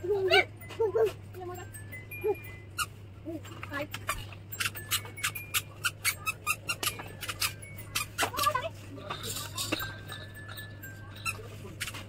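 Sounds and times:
low steady hum: 0.0s - 12.0s
squeaky sandals squeaking: 4.0s - 8.6s, 11.1s - 12.0s.

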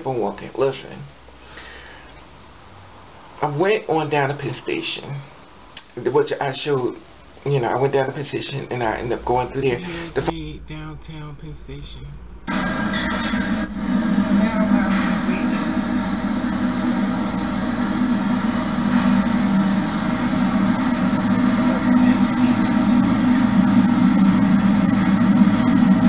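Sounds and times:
steady droning hum: 8.6s - 26.0s.

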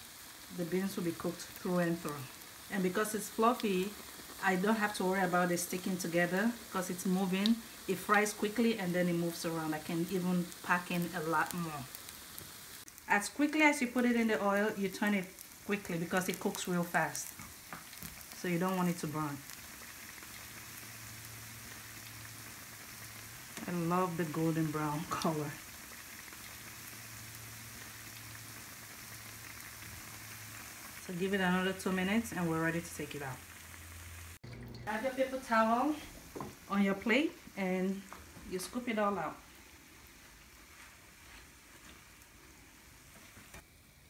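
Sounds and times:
faint oil crackles: 0.0s - 44.0s
fritters sizzling in hot oil: 0.0s - 44.0s.

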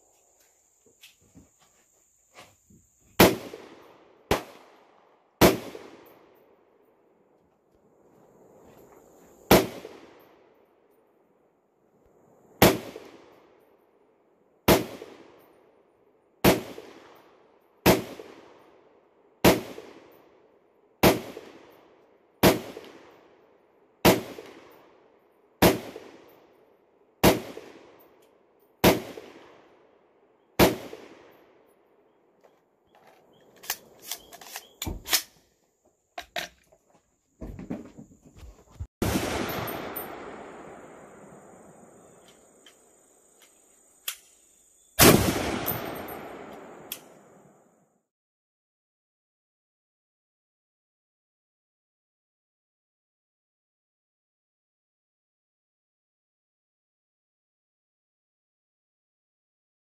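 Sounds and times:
rifle shots: 3.2s - 4.8s, 5.4s - 6.3s, 9.5s - 10.2s, 12.6s - 13.4s, 14.7s - 15.4s, 16.4s - 17.2s, 17.8s - 18.6s, 19.4s - 20.1s, 21.0s - 21.8s, 22.4s - 23.2s, 24.0s - 24.8s, 25.6s - 26.3s, 27.2s - 28.1s, 28.8s - 29.7s, 30.6s - 31.4s, 39.0s - 42.2s, 45.0s - 47.3s.

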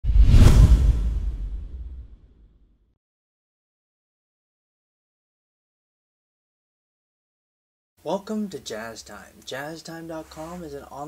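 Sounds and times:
deep rumble: 0.0s - 2.4s
loud swish: 0.0s - 2.5s.

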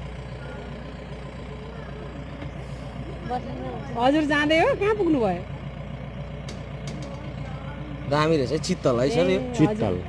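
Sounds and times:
car engine idling: 0.0s - 10.0s
people talking: 3.0s - 5.4s, 6.9s - 10.0s.

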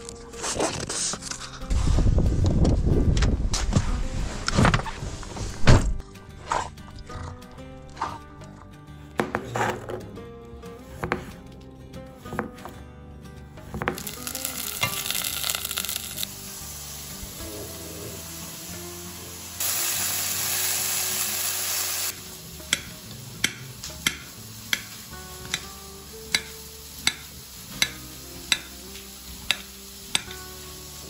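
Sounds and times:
background music: 0.0s - 31.0s
steaks sizzling in frying pan: 14.0s - 31.0s.

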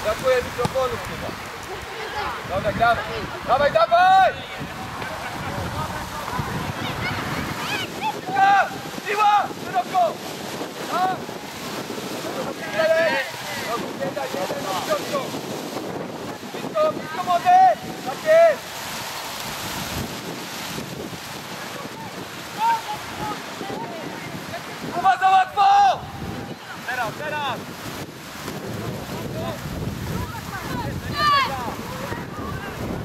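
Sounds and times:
wind buffeting microphone: 0.0s - 33.0s
players shouting: 1.8s - 11.7s, 21.7s - 27.5s, 30.2s - 32.8s.

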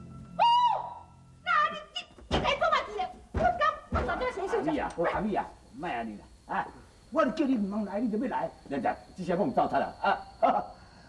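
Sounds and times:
agitated speech: 1.5s - 10.7s.

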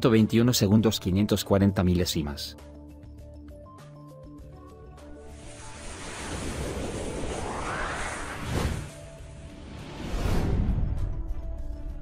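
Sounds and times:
whoosh sound effect: 5.4s - 9.1s.

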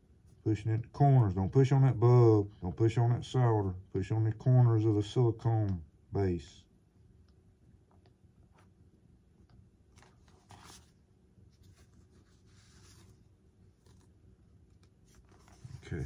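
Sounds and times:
short rustle: 9.9s - 14.2s.

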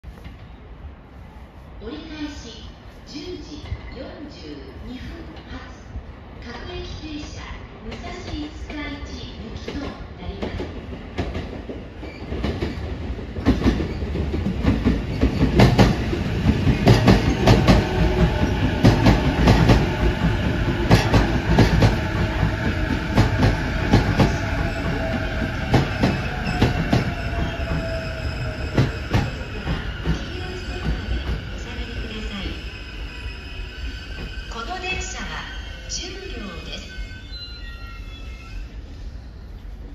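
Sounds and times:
train wheels rumbling over rail joints: 10.4s - 32.2s.

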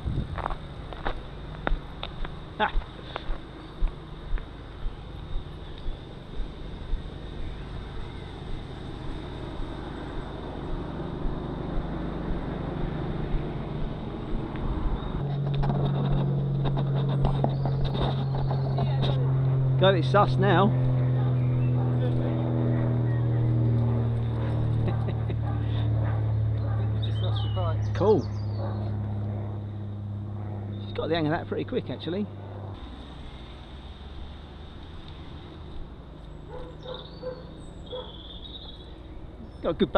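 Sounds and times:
wind rushing over camera: 0.0s - 2.4s
steady low hum: 0.0s - 39.9s.

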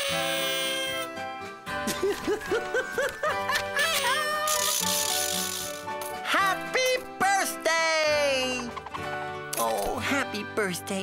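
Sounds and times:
bouncy cartoon music: 0.0s - 11.0s.

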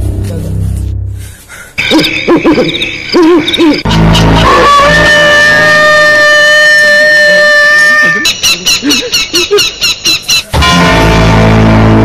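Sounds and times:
loud low drone: 3.8s - 6.2s, 10.6s - 12.0s.

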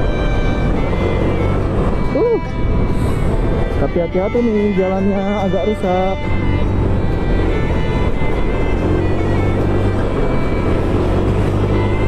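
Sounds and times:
background music: 0.0s - 12.0s
motorcycle engine drone: 0.0s - 12.0s.

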